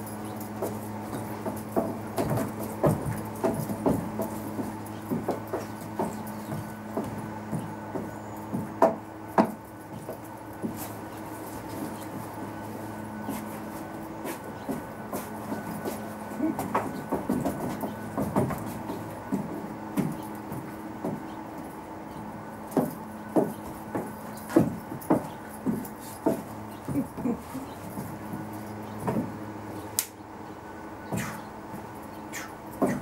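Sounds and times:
boots stamping on wooden deck: 0.0 - 29.6, 31.1 - 33.0
loud machine humming: 0.0 - 33.0.

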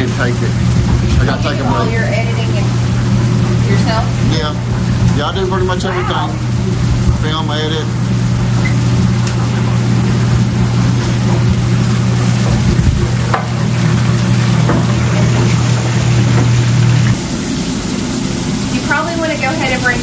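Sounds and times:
burger patties sizzling on griddle: 0.0 - 20.0
kitchen ventilation hum: 0.0 - 20.0.

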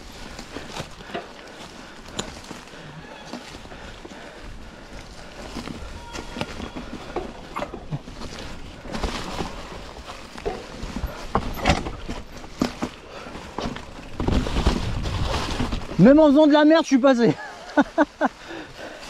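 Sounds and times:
low rumble of bike: 0.0 - 16.0
bike knocking and rattling: 0.0 - 16.5
bike tyres rolling over leaves: 0.0 - 19.0.

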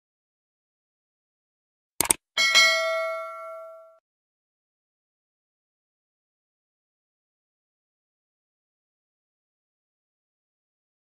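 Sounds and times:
quick double click: 2.0 - 2.2
bright bell ding: 2.4 - 4.0.

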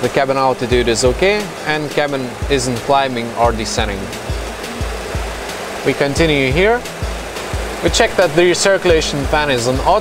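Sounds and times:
cockpit hum: 0.0 - 10.0
music with low beat: 0.6 - 10.0.

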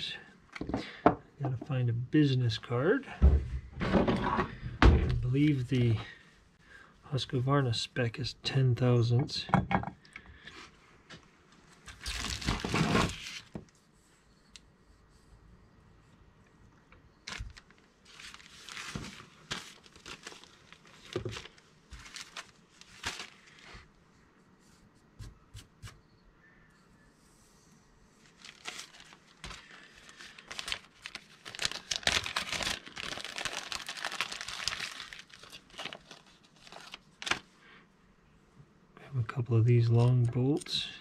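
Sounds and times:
plastic bags crinkling: 12.0 - 13.5, 17.2 - 23.7, 28.2 - 37.5.

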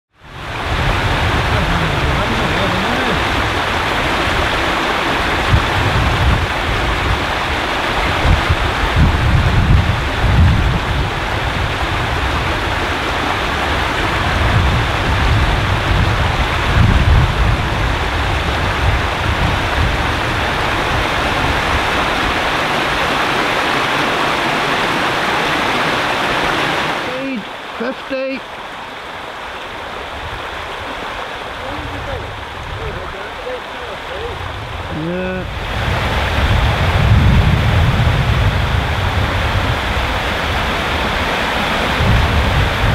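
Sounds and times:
stream running over rocks: 0.1 - 42.9.

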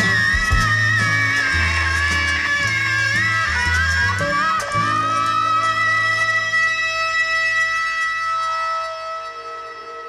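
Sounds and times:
pedal steel guitar chord: 0.0 - 10.0.

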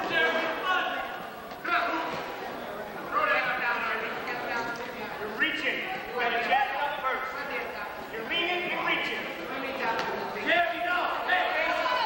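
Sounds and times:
spectators shouting: 11.0 - 12.0.

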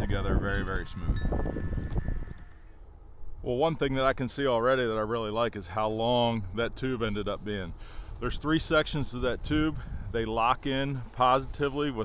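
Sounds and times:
metallic chime ringing: 0.4 - 2.0.

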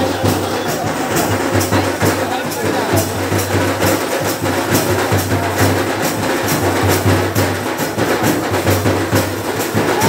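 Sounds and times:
sharp high drum strikes: 0.0 - 10.0.

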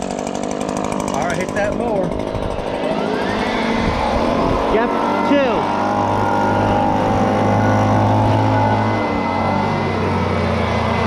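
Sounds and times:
leaf blower running: 0.0 - 11.0.

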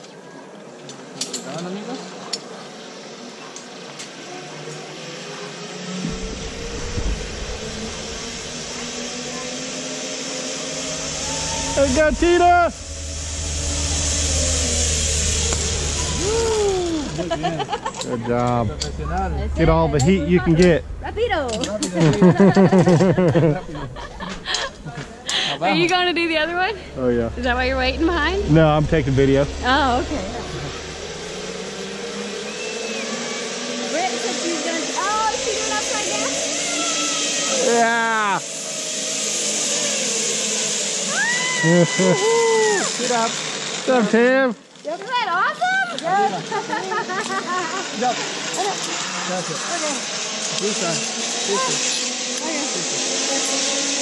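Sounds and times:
zip line pulleys whirring: 0.0 - 54.0
wind rush: 6.0 - 9.3, 10.8 - 17.8
person whooping cry: 16.2 - 17.2, 41.1 - 42.9.

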